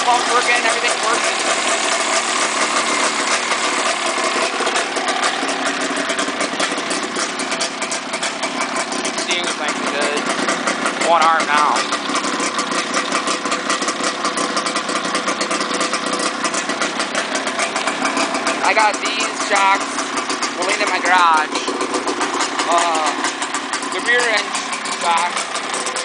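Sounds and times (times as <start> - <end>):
snowmobile engine idling: 0.0 - 26.0.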